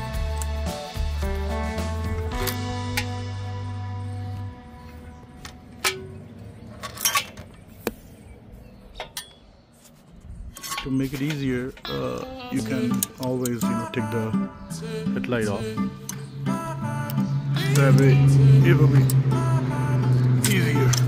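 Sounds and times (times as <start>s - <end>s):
guitar music: 0.0s - 6.5s, 11.8s - 21.0s.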